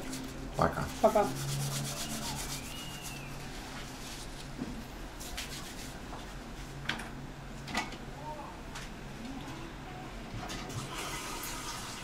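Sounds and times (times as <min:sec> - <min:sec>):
hands rubbing together: 0:00.0 - 0:04.5, 0:05.2 - 0:06.0.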